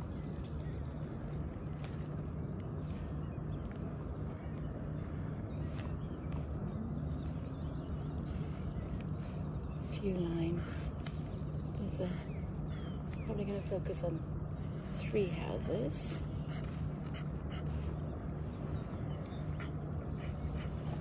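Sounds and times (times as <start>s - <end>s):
faint steady hum: 0.0s - 21.0s
low outdoor rumble: 0.0s - 21.0s.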